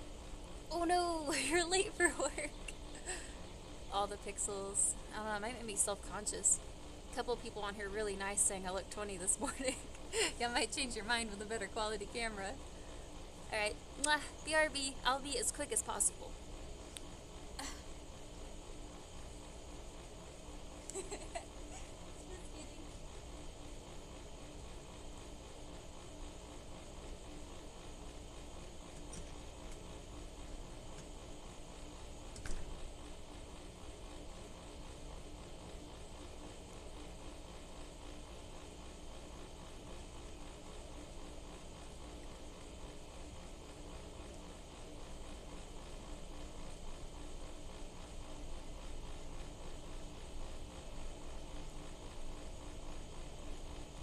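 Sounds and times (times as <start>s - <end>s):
outdoor background hum and hiss: 0.0s - 54.0s.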